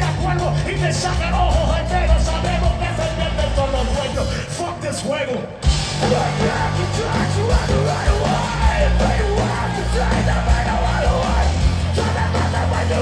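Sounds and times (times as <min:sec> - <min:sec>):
punk rock band playing live: 0:00.0 - 0:13.0
yelled vocals: 0:00.0 - 0:13.0.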